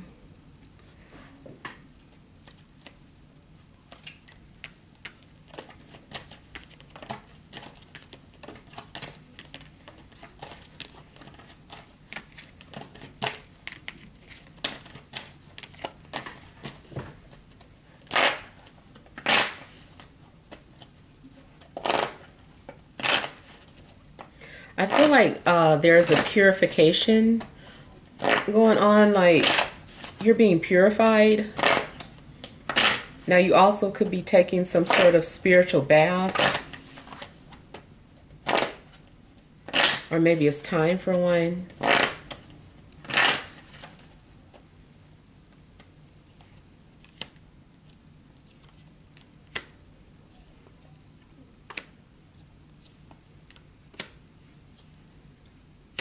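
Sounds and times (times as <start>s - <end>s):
cards shuffling: 3.8s - 25.3s, 26.0s - 27.5s
person blowing out a breath: 24.4s - 24.8s.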